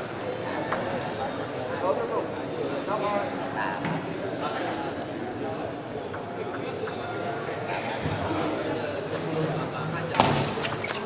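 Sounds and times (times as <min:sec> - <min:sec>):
murmur of voices: 0:00.0 - 0:11.0
table tennis ball ticking: 0:06.0 - 0:07.2.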